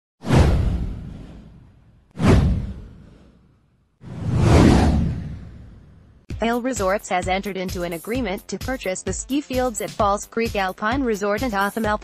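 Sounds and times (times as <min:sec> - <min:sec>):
deep whoosh: 0:00.2 - 0:06.3.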